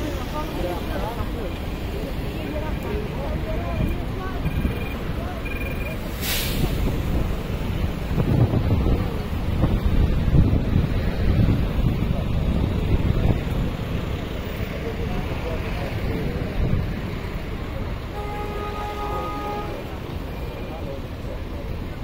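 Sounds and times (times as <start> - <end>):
traffic: 0.0 - 22.0
voices of passers-by: 0.0 - 22.0
short hiss: 6.0 - 7.0
wind rumble on microphone: 6.7 - 17.6.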